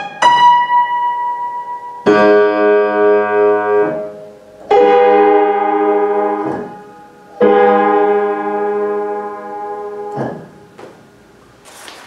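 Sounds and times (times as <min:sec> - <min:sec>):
untuned piano chord ringing: 0:00.0 - 0:11.4.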